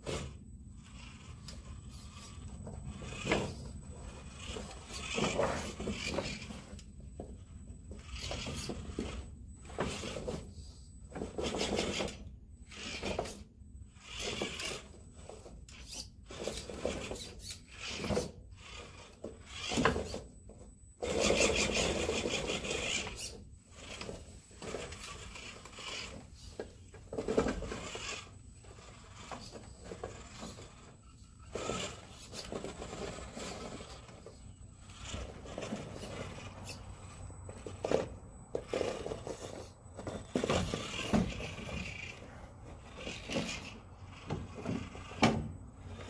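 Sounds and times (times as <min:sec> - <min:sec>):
electric motor whirring: 0:00.2 - 0:20.3, 0:21.0 - 0:26.7, 0:27.3 - 0:46.0.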